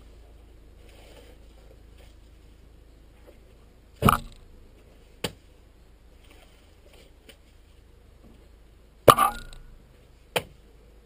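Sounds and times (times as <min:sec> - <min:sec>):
spade knock cutting peat: 0:04.0 - 0:04.4.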